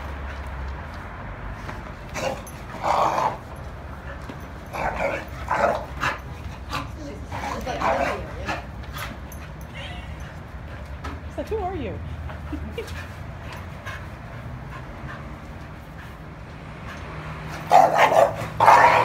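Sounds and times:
dogs barking and yipping: 0:01.9 - 0:11.0, 0:12.4 - 0:19.0.

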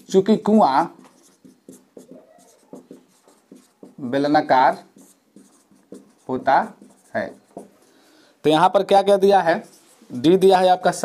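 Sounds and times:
marker scratching on whiteboard: 0:00.0 - 0:11.0.

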